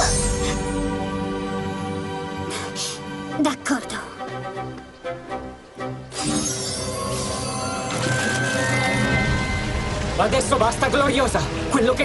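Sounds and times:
film score music: 0:00.0 - 0:12.0
shimmering magic sound effect: 0:06.1 - 0:10.7.

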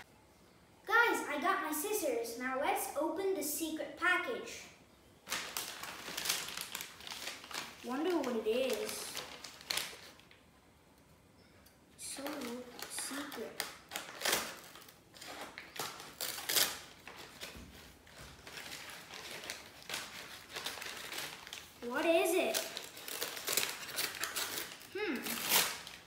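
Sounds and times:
paper crinkling and rustling: 0:05.2 - 0:10.4, 0:12.0 - 0:26.0.

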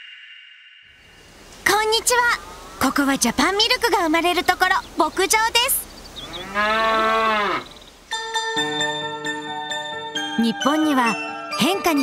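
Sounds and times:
cow mooing: 0:06.2 - 0:07.8.

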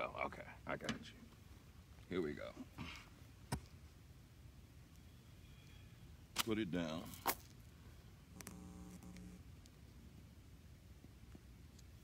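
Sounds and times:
low hum: 0:08.3 - 0:09.5.

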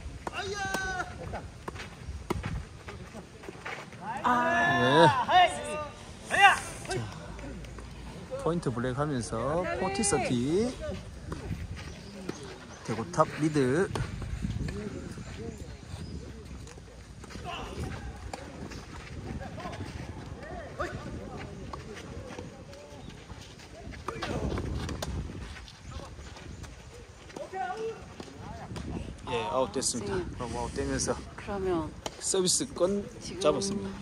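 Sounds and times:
wind rumble on microphone: 0:00.0 - 0:03.1, 0:10.7 - 0:27.2, 0:27.9 - 0:34.0
man speaking: 0:32.3 - 0:34.0.

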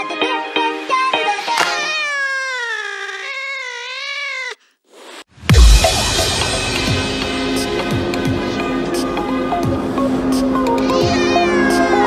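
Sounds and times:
cat-like yowl: 0:01.5 - 0:04.8
music with deep bass hit: 0:05.5 - 0:08.9.

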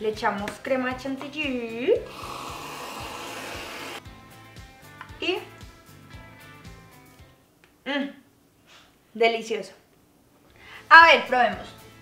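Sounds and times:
aerosol can spraying hiss: 0:02.1 - 0:04.0.

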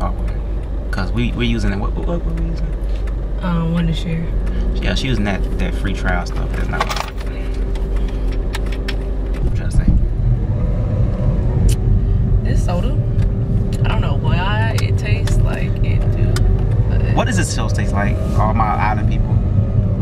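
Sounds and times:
car interior rumble: 0:00.0 - 0:20.0
steady hum: 0:00.0 - 0:20.0.

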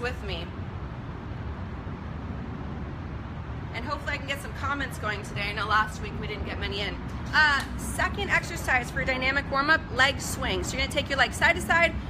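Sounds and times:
city background noise: 0:00.0 - 0:12.0.

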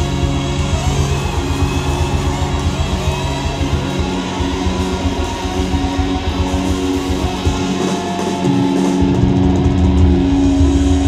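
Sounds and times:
live band playing: 0:00.0 - 0:11.0.

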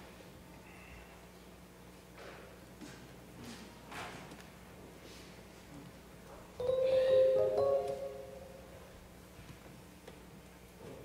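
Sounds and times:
electronic keyboard chord: 0:06.6 - 0:08.9.

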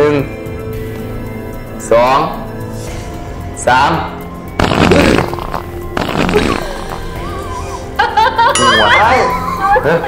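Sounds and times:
background music: 0:00.0 - 0:10.0
loud fart: 0:04.6 - 0:07.2.

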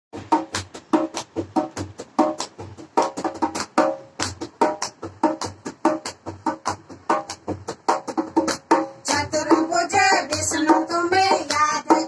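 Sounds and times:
hand drum played in brisk rhythm: 0:00.1 - 0:12.0.

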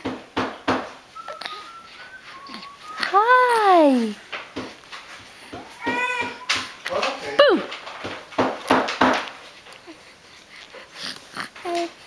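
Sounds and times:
baby cooing: 0:01.2 - 0:04.2, 0:05.6 - 0:06.8, 0:11.0 - 0:12.0.

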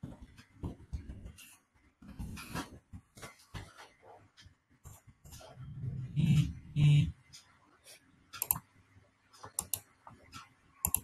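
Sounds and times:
computer mouse clicks: 0:08.4 - 0:08.7, 0:09.4 - 0:11.0.

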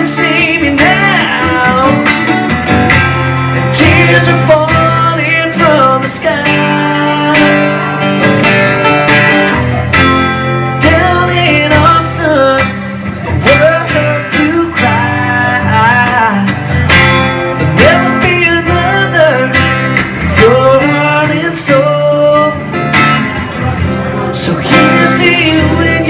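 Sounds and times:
lead guitar with bent notes: 0:00.0 - 0:26.0
strummed acoustic guitar: 0:00.0 - 0:26.0.

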